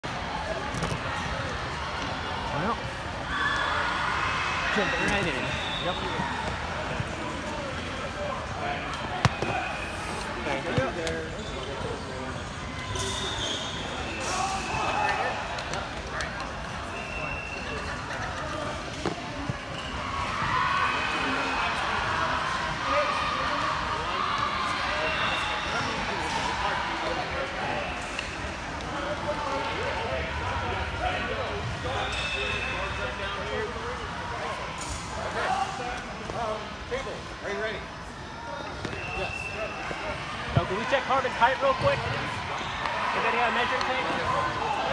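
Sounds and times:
many voices chattering: 0.0 - 44.9.

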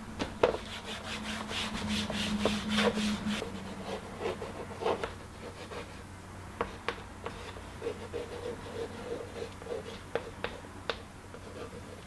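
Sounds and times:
towel rubbing chalkboard: 0.4 - 5.9
chalk scratching on board: 0.4 - 6.0, 6.6 - 10.6, 11.4 - 12.0.

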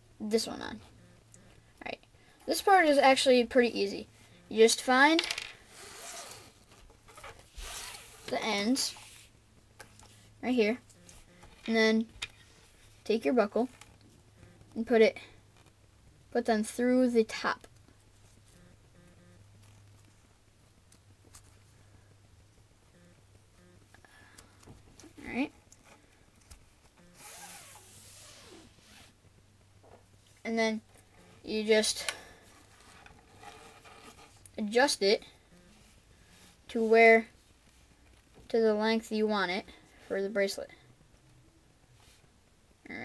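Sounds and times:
cord rustling through fingers: 4.3 - 14.8, 15.4 - 15.8, 19.5 - 22.0, 24.4 - 29.2, 30.0 - 34.6
cord pulled through plastic buckle: 32.5 - 34.5.

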